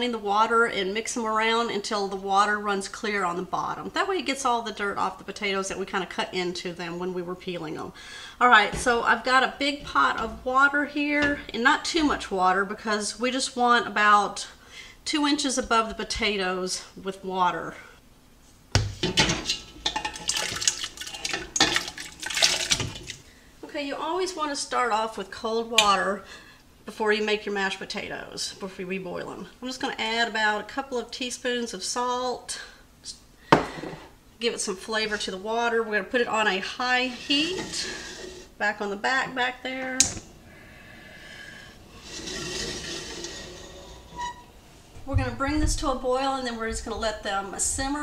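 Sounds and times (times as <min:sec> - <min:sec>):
gas burner flame hissing: 0:36.8 - 0:38.6.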